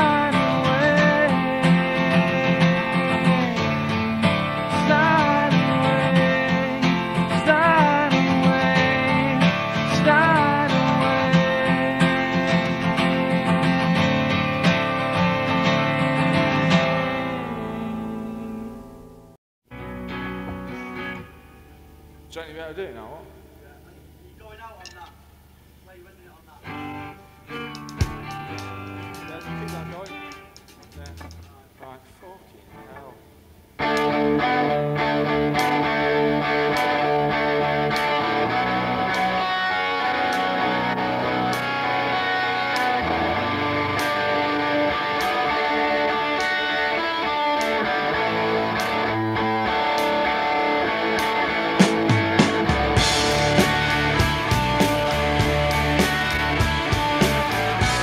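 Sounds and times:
rock band playing: 0.0 - 18.8, 19.7 - 22.4, 26.6 - 31.8, 32.8 - 58.0
electric guitar: 0.0 - 25.7, 26.6 - 31.8, 32.6 - 58.0.

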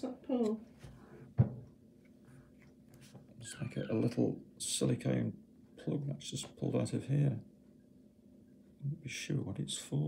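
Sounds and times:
faint low hum: 0.0 - 10.0
quiet handling of plastic: 0.4 - 4.3.

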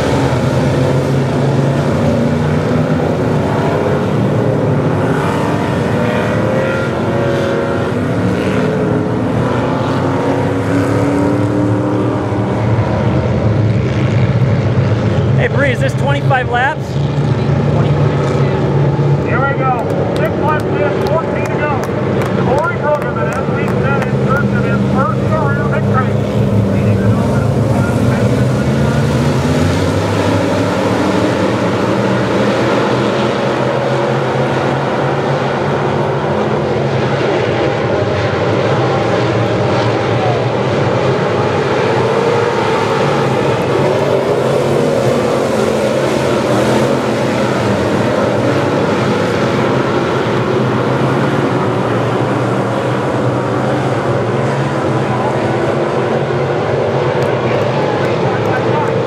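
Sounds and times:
race car engines droning: 0.0 - 59.0.

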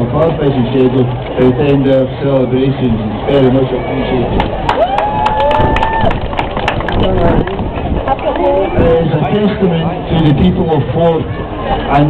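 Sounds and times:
outdoor crowd murmuring: 0.0 - 12.0
steady low rumble: 4.2 - 11.8.

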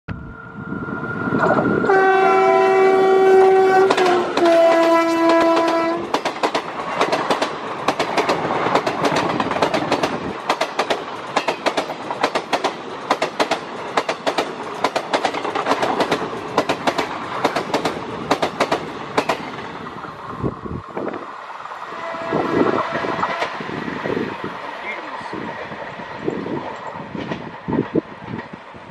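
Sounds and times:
train horn: 1.7 - 6.1, 21.8 - 23.8
train wheels clickety-clack: 3.7 - 19.7, 24.5 - 28.9.

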